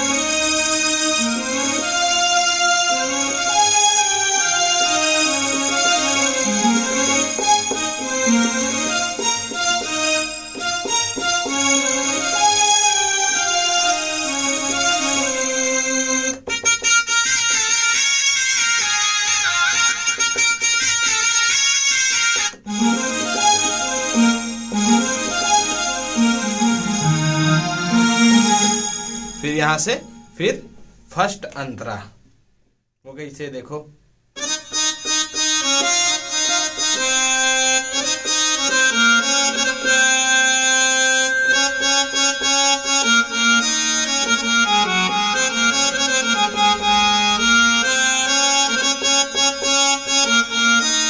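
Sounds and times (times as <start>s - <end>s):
synthesizer melody: 0.0s - 21.4s, 22.6s - 31.1s, 34.4s - 51.0s.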